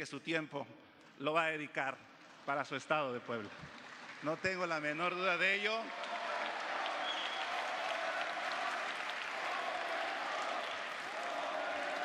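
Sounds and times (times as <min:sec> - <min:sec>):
audience applauding: 0:02.4 - 0:12.0.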